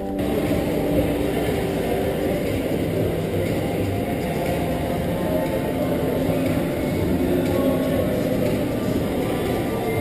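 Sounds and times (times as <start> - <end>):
low rumbling mall ambience: 0.0 - 10.0.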